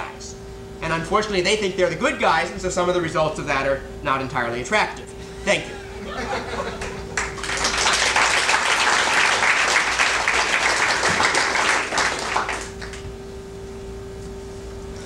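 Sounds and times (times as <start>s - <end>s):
steady electrical hum: 0.0s - 15.0s
audience applauding: 6.8s - 13.0s.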